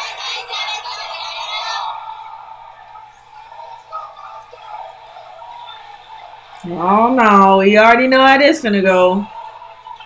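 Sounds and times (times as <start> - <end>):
crowd chanting slogans: 0.0 - 6.8.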